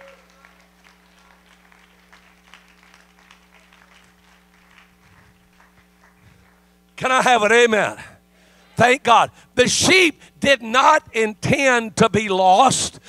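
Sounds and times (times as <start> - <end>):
distant voice: 0.0 - 0.8
low electrical hum: 0.0 - 13.0.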